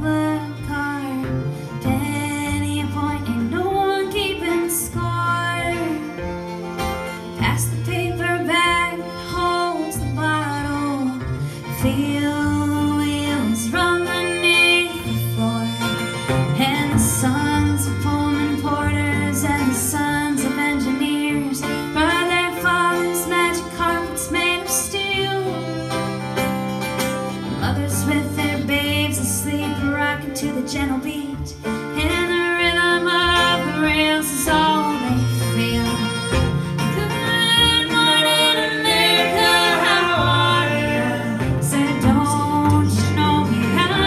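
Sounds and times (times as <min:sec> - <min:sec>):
acoustic guitar: 0:00.0 - 0:44.0
fiddle: 0:00.0 - 0:44.0.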